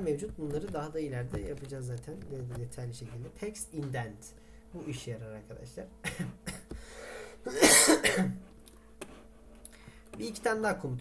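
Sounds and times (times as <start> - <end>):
man coughing: 6.0 - 6.8, 7.4 - 8.4.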